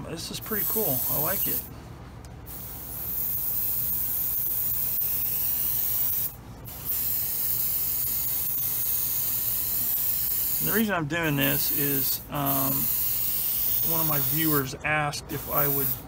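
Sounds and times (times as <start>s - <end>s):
airbrush spraying hiss: 0.5s - 1.7s, 2.5s - 14.7s, 15.3s - 16.0s.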